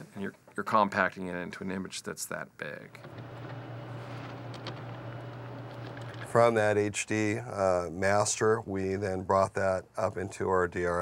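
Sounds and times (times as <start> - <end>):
low electrical hum: 2.6 - 11.0.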